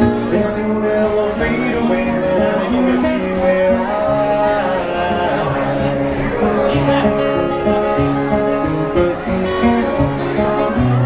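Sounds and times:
acoustic guitar folk song: 0.0 - 11.0.

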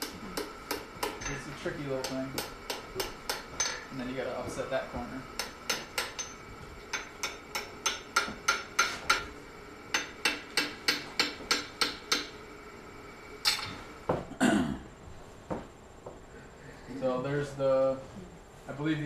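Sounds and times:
hammer striking hot iron on anvil: 0.0 - 4.0, 5.3 - 12.4, 13.4 - 13.8.

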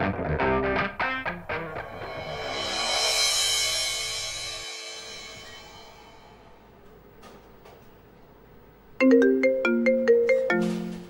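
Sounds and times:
phone ringtone marimba melody: 9.0 - 11.0.

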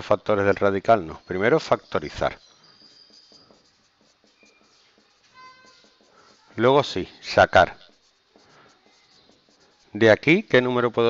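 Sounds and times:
marker pen writing on whiteboard: 0.0 - 11.0.

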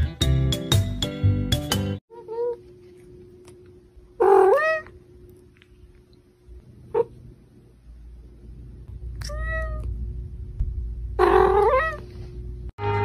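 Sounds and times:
faint steady hum: 2.1 - 12.7
cat meowing: 4.2 - 4.9, 11.2 - 12.0.

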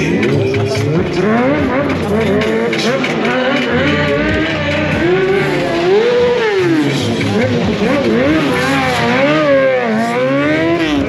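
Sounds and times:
motorcycle engine revving: 0.0 - 11.0.

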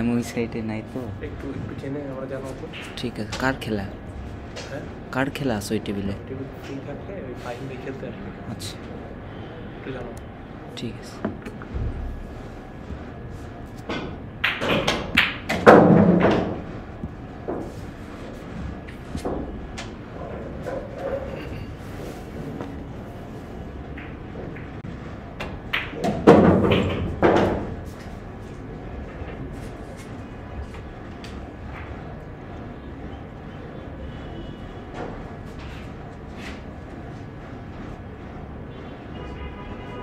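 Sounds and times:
pool balls clacking: 13.7 - 18.2, 23.8 - 28.0.

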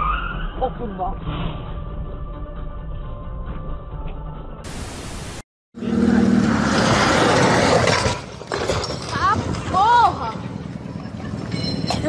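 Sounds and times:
static hiss: 4.7 - 5.4.

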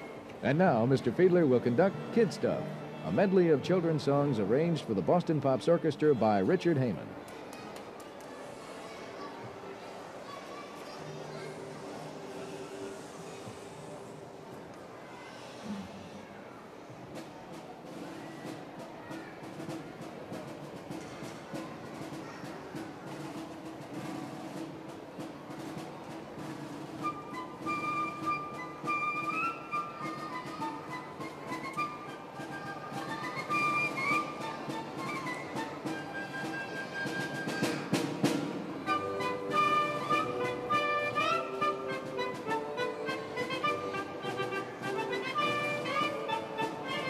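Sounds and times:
orchestra playing: 0.5 - 4.6, 31.3 - 47.0
drum roll: 17.1 - 47.0
piccolo melody: 27.0 - 38.0, 38.8 - 47.0.

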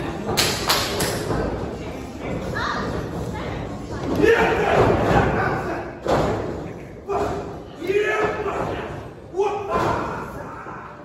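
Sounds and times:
wrestlers thudding on the ring: 3.9 - 10.4.

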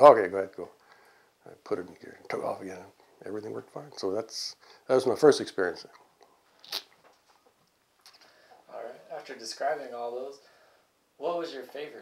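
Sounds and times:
lip smack: 6.6 - 8.3.

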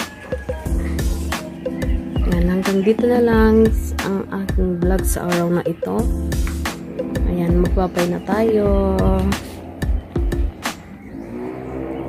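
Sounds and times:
background music: 0.0 - 12.0
steady low rumble: 6.0 - 10.6.

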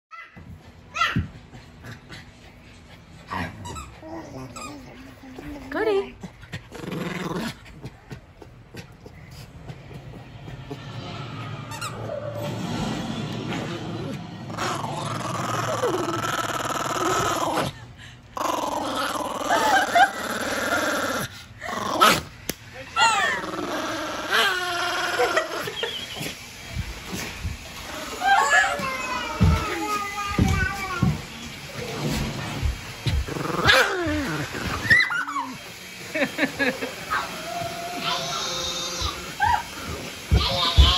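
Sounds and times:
dog growling: 3.1 - 8.1, 12.0 - 22.3, 23.0 - 26.0, 27.8 - 28.8, 31.7 - 35.3.

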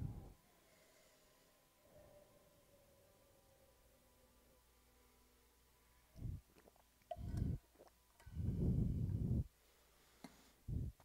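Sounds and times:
low muffled rumble: 8.4 - 9.5, 10.7 - 11.0.

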